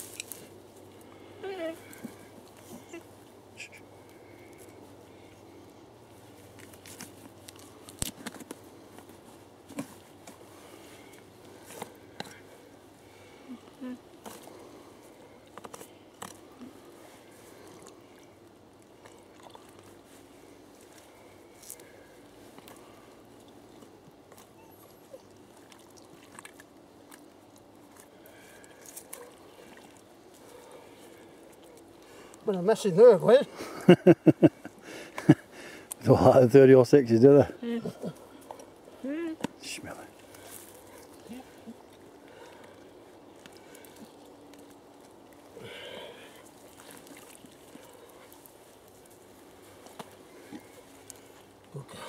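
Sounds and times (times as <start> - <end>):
faint outdoor background: 0.0 - 52.0
wet crunches of cutting carcass: 6.6 - 8.6.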